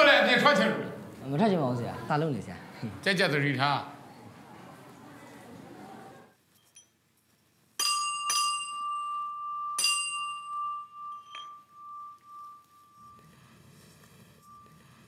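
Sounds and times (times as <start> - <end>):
metal bell struck by hand: 7.8 - 13.5.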